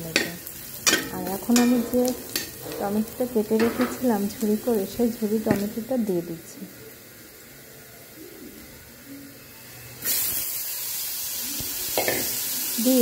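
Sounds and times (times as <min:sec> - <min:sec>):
food sizzling in hot oil: 0:00.0 - 0:13.0.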